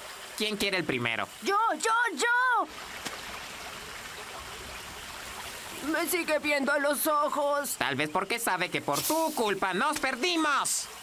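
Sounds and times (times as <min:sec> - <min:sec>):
person speaking: 0:05.8 - 0:10.9.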